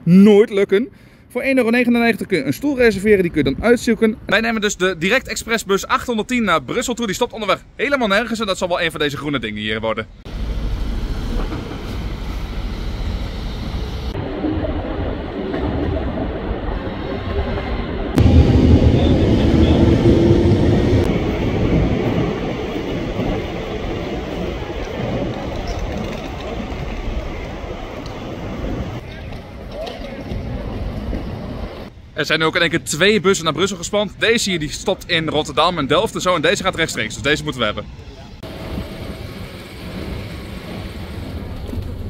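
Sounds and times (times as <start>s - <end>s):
traffic noise: 0.9s - 42.0s
passing vehicle rumble: 10.2s - 29.7s
people's voices: 29.0s - 31.5s.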